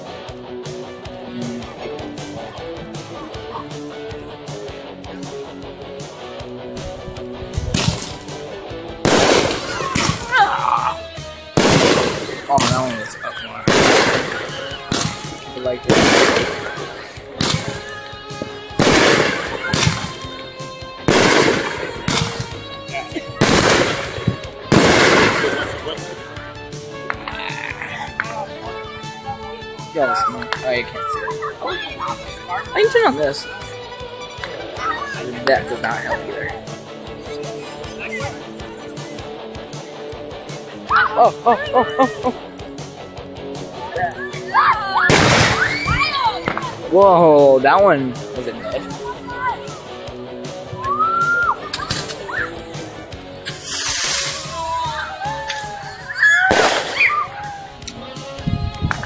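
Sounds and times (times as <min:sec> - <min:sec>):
voices crying out: 0:00.0 - 0:07.6, 0:08.2 - 0:53.4, 0:54.2 - 0:58.8
fireworks bangs: 0:07.5 - 0:10.4, 0:11.6 - 0:29.2, 0:45.0 - 0:46.9, 0:50.6 - 0:57.6.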